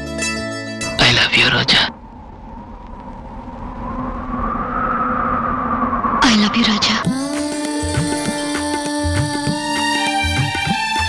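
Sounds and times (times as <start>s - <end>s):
low rumbling drone: 0.9s - 8.1s
faint gliding tone: 1.9s - 7.0s.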